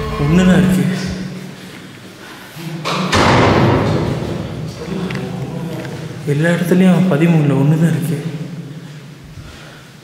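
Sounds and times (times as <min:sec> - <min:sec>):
sharp knock: 0:02.9 - 0:04.5.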